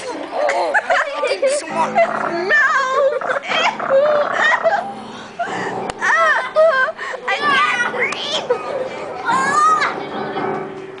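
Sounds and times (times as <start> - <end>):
children laughing and squealing: 0.0 - 10.6.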